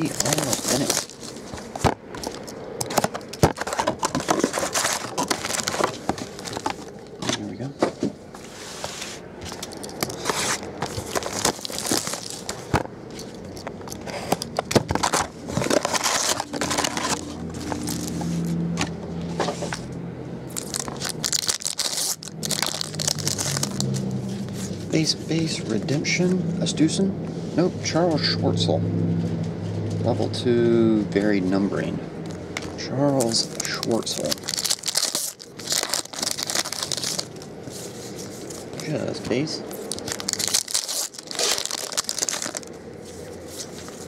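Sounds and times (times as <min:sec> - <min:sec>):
card wrappers tearing and crinkling: 0:00.0 - 0:07.2, 0:09.6 - 0:18.9, 0:20.5 - 0:25.2, 0:33.1 - 0:39.1, 0:39.7 - 0:42.8
cards rustling and clicking: 0:00.0 - 0:07.5, 0:09.4 - 0:19.9, 0:32.6 - 0:44.0.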